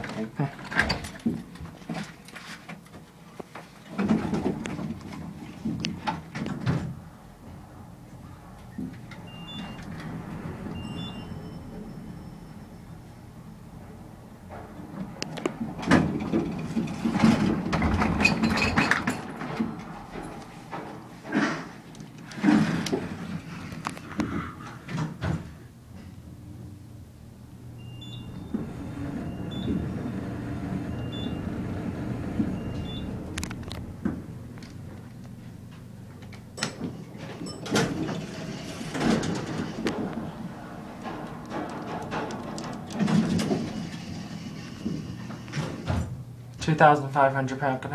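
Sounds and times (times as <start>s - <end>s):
elevator car hum: 3.9s - 46.6s
short high beeps: 10.7s - 13.0s, 27.8s - 28.6s.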